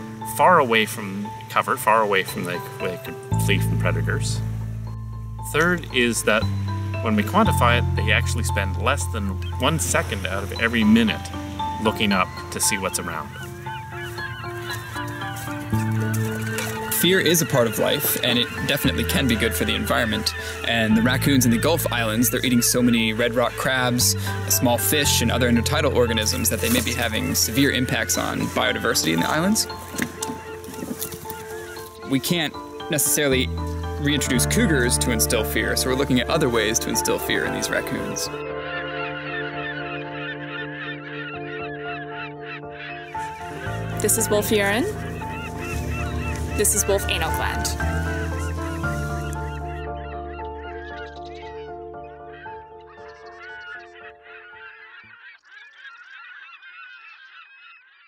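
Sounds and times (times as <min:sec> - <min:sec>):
soft background music: 0:00.0 - 0:55.0
bird calls: 0:00.2 - 0:58.0.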